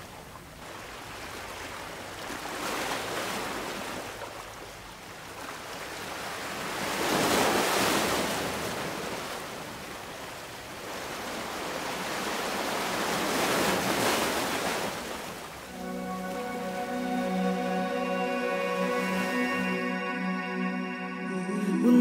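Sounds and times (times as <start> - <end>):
ocean waves breaking: 0.6 - 22.0.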